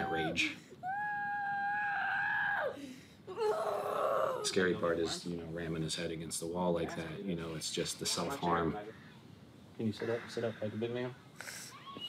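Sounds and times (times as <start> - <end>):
boy screaming: 0.0 - 4.8.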